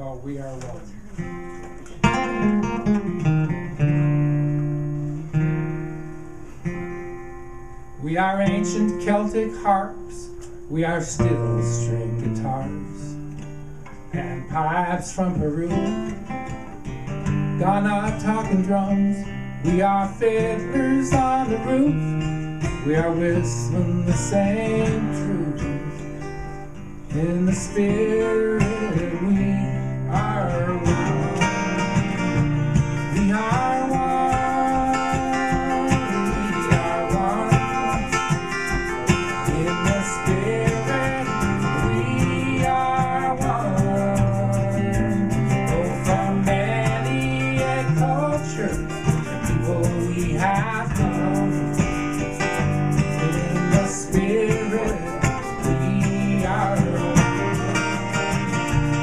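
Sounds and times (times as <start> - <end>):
acoustic guitar: 0.0 - 59.0
man and woman singing folk song: 8.0 - 59.0.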